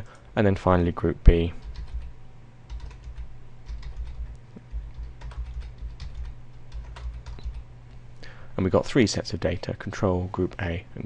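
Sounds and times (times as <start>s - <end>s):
steady low hum: 0.0s - 11.0s
computer keyboard typing: 1.6s - 2.1s, 2.7s - 7.7s.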